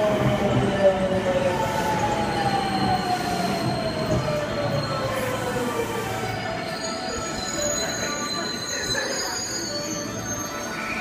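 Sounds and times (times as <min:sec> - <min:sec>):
train cars passing: 0:00.0 - 0:11.0
train wheels squealing: 0:00.1 - 0:11.0.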